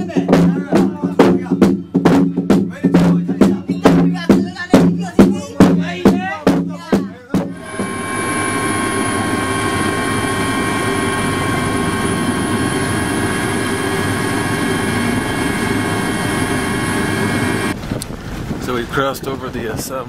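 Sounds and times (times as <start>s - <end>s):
aircraft engines from inside cabin: 7.5s - 18.6s.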